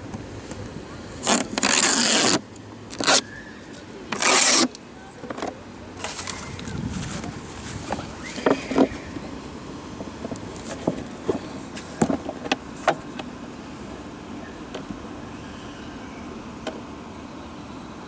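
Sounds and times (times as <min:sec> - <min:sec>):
faint background noise: 0:00.0 - 0:18.0.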